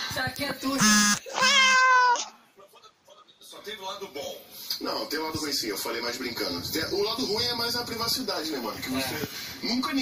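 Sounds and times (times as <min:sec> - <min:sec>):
cat meowing: 0:01.2 - 0:02.3.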